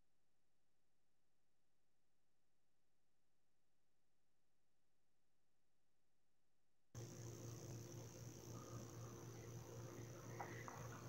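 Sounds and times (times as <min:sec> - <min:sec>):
steady low hum: 0:07.0 - 0:11.0
thin high-pitched whine: 0:07.0 - 0:11.0.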